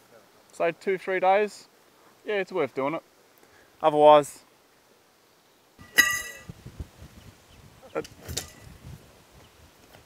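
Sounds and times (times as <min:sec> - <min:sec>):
short ringing ping: 0:05.8 - 0:06.5.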